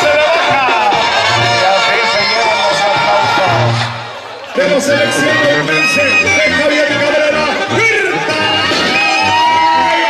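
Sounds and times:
tuba bass line: 0.0s - 10.0s
wind melody with trills: 4.6s - 9.4s.

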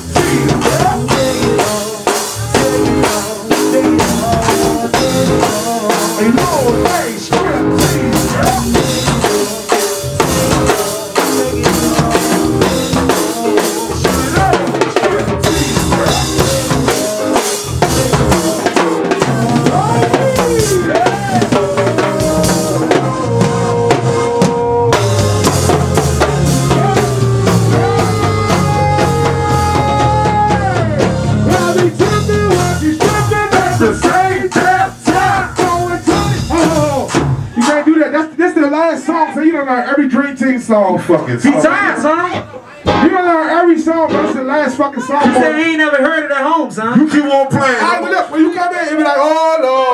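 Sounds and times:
pitched melody line bending: 0.0s - 37.3s
men singing: 0.0s - 37.6s
bass guitar: 0.0s - 37.7s
drum kit beat: 0.0s - 38.4s, 42.8s - 44.4s.

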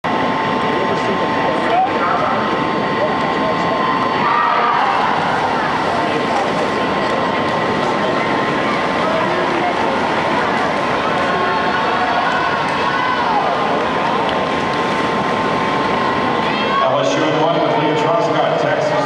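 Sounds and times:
spectators cheering and shouting: 0.2s - 19.0s.

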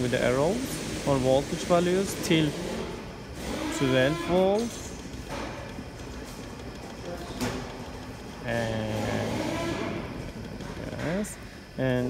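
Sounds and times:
cooling fan whirring: 0.0s - 12.0s.

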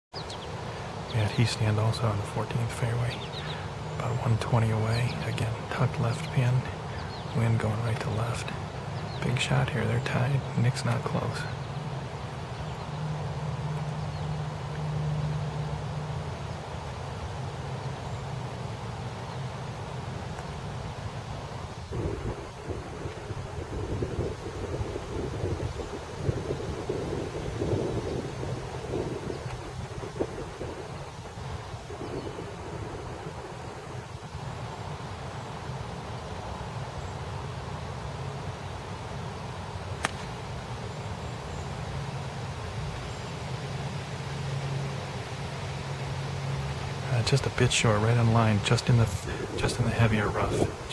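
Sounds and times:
low steady hum: 0.2s - 50.9s
wind on microphone: 20.2s - 36.7s, 48.8s - 50.9s
golf iron striking ball: 40.0s - 40.5s.

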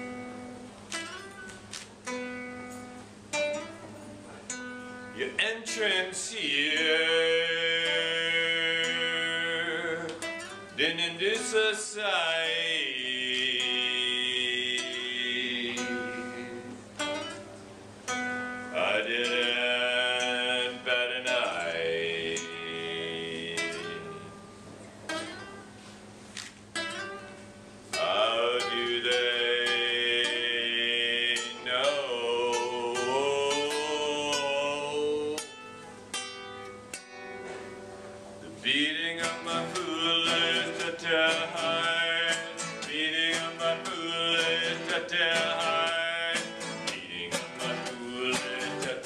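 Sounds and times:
acoustic guitar strumming chords: 0.0s - 49.0s
man singing long notes: 5.2s - 16.8s, 18.7s - 24.2s, 27.9s - 35.8s, 38.4s - 49.0s.

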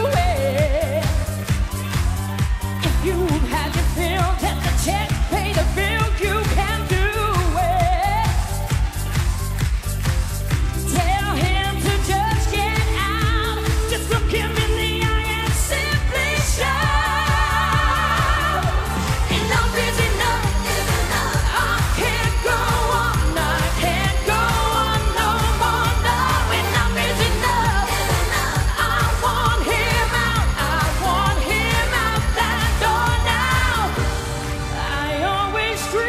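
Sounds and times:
band playing steady beat: 0.0s - 35.0s
woman singing pop song: 0.0s - 36.0s.

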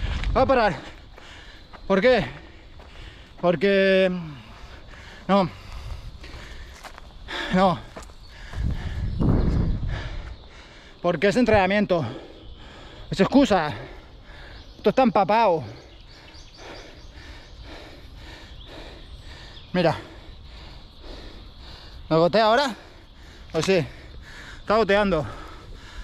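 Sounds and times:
wind rumble on microphone: 0.0s - 0.8s, 8.1s - 10.5s
runner breathing hard: 0.0s - 14.8s, 15.5s - 26.0s
footfalls on dirt path: 5.6s - 10.4s.

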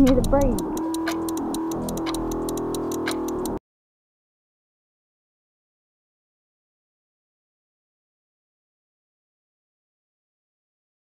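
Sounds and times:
rapid even ticking: 0.0s - 3.6s.

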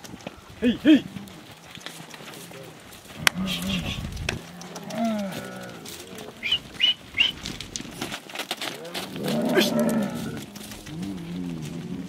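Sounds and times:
camel moaning call: 2.6s - 6.9s, 8.7s - 12.0s.

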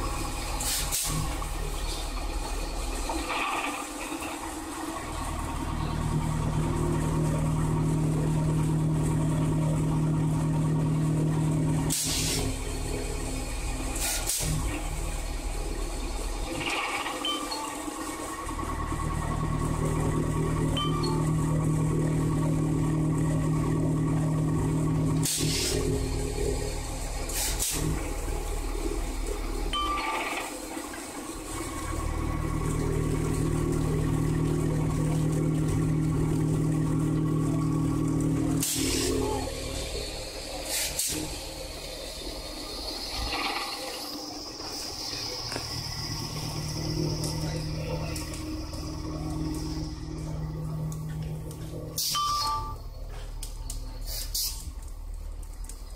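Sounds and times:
machine motor hum: 0.0s - 55.9s.

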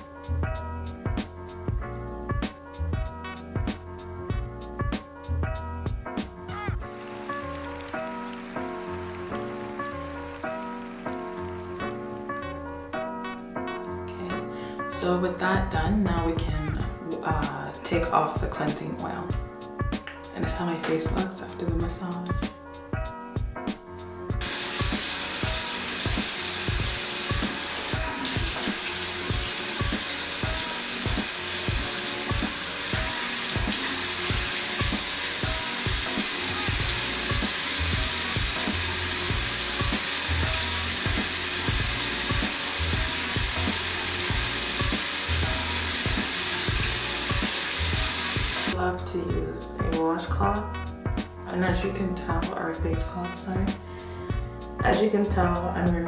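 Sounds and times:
tap water running into sink: 24.4s - 48.8s.

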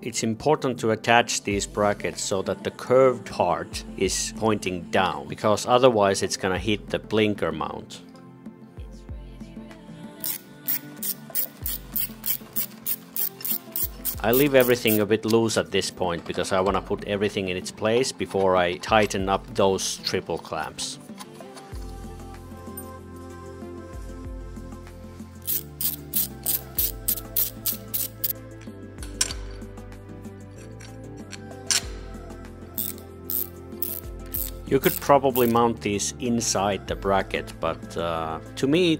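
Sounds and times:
background music: 0.0s - 38.9s
ratchet wrench rasping: 10.2s - 15.0s, 25.4s - 28.4s, 32.8s - 35.6s.

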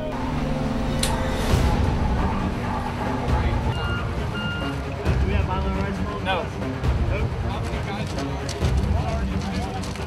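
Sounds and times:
low rumbling: 0.0s - 7.8s
short electronic beeps: 3.7s - 4.8s.

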